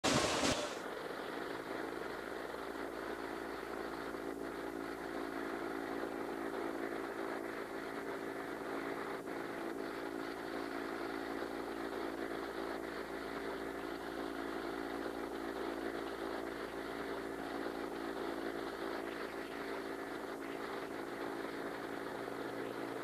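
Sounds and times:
loud burst of noise: 0:00.0 - 0:23.0
machine hum: 0:00.0 - 0:23.0.

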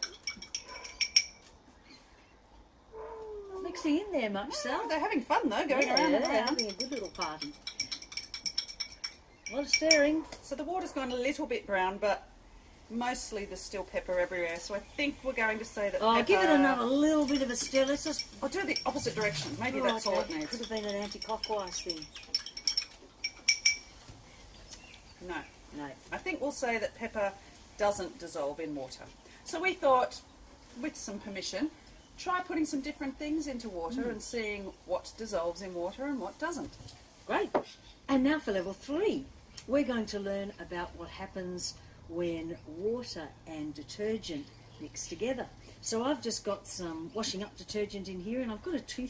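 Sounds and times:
teaspoon clinking against glass jar: 0:00.0 - 0:01.5, 0:05.7 - 0:10.1, 0:17.0 - 0:24.0.

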